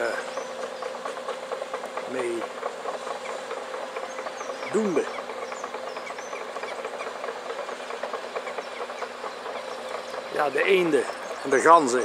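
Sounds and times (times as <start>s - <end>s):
distant machinery hum: 0.0s - 12.0s
faint bird chirps: 4.0s - 7.2s.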